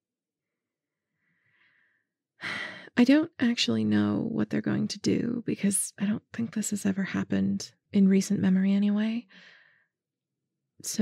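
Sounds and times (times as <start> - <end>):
woman breathing in: 1.2 - 3.0, 9.3 - 9.9
woman speaking: 2.4 - 9.3.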